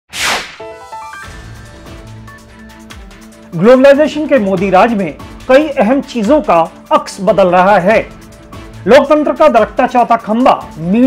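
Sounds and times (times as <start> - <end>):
sharp swoosh: 0.1 - 1.0
rising musical notes: 0.2 - 2.5
sustained music: 0.5 - 11.0.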